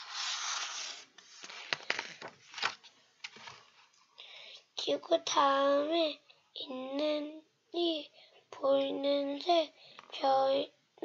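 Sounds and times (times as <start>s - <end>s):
boy reading aloud sing-song: 4.6s - 11.0s.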